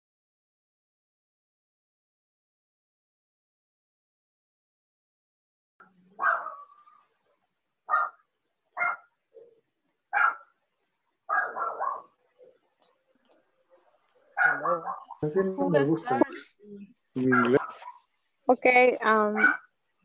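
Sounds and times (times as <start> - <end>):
dog barking: 6.2 - 6.8, 7.9 - 8.2, 8.8 - 10.6, 11.3 - 12.6, 14.3 - 15.2, 17.2 - 18.1, 19.3 - 19.7
person speaking: 14.4 - 17.9.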